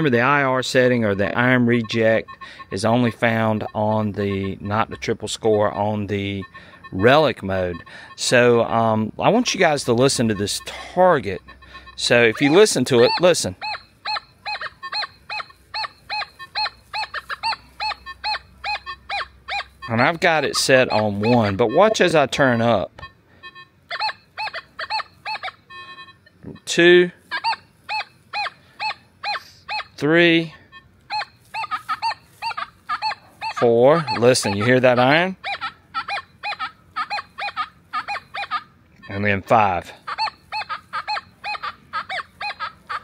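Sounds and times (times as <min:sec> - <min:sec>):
metal detector beeps: 0:00.0 - 0:43.0.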